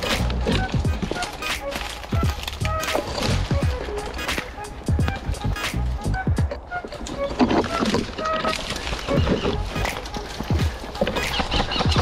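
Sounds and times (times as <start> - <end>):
footsteps crunching through dry leaves: 0.0 - 6.0, 8.0 - 12.0
twigs crackling: 0.0 - 12.0.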